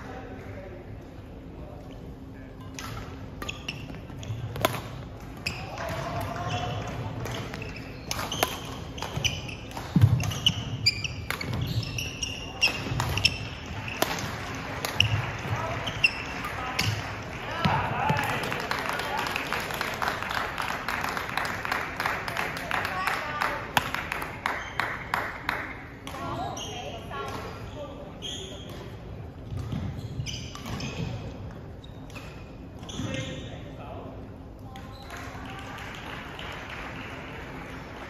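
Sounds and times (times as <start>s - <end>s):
voices in a hall: 0.0s - 38.0s
shoes squeaking on wooden court: 2.6s - 17.1s, 26.2s - 33.7s
racket striking shuttlecock: 4.5s - 6.0s, 7.2s - 11.6s, 12.6s - 15.2s.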